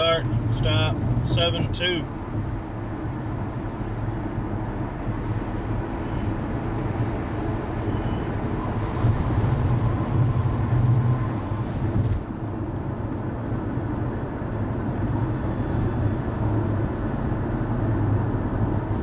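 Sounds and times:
road and engine rumble: 0.0s - 19.0s.

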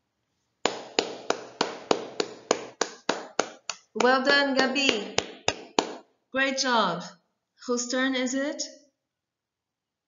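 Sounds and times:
person clapping: 0.6s - 6.1s.

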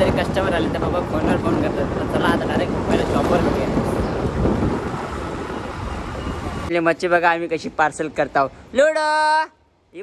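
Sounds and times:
wind buffeting the microphone: 0.0s - 6.7s.

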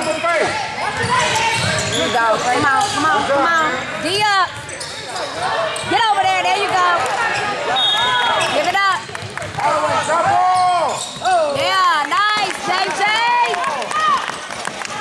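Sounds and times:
sneakers squeaking on hardwood floor: 0.9s - 3.4s, 4.5s - 11.9s.

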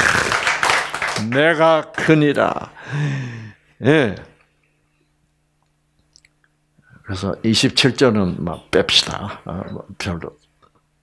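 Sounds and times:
faint electrical hum: 0.0s - 11.0s
man speaking: 7.0s - 10.4s.

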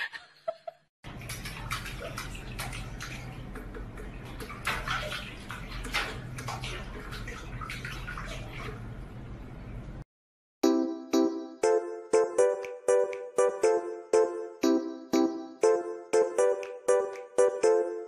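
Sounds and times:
cat splashing water in a sink: 1.1s - 10.0s
steady water noise: 1.1s - 10.0s.

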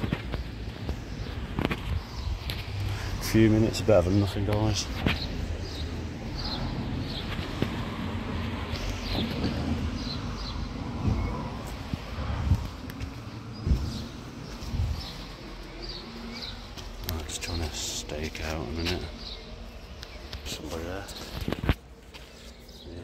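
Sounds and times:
low rumble of traffic: 0.0s - 23.0s
small birds chirping: 0.0s - 23.0s
soft low thumps: 9.1s - 16.1s.

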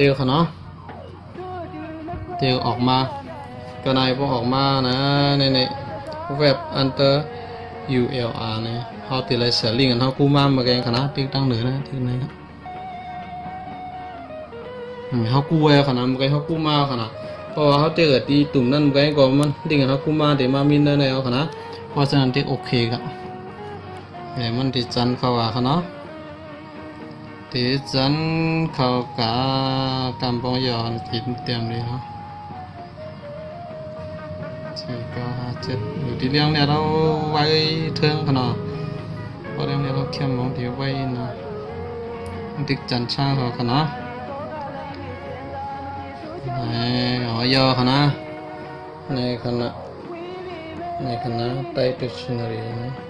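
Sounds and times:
man chanting long held notes: 1.4s - 12.4s, 27.3s - 53.0s
man chanting a long syllable: 34.8s - 53.0s.

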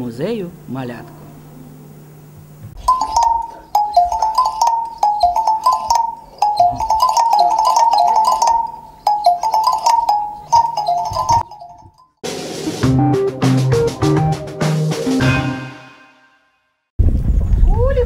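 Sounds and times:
musical toy tinny melody: 2.8s - 12.0s.

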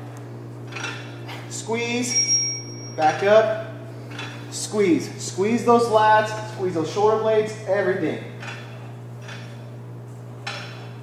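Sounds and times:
steady low hum: 0.0s - 11.0s
weight stack clinking: 0.6s - 1.2s, 8.4s - 9.7s, 10.4s - 11.0s.

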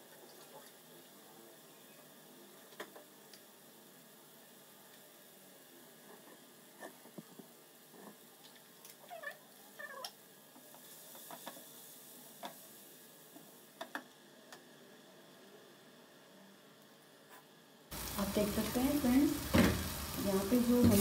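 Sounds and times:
frying hiss: 0.0s - 21.0s.

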